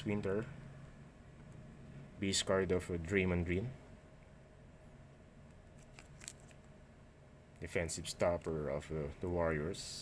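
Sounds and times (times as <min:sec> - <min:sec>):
low background hum: 0:00.0 - 0:10.0
card handling clicks and rustles: 0:05.7 - 0:06.7.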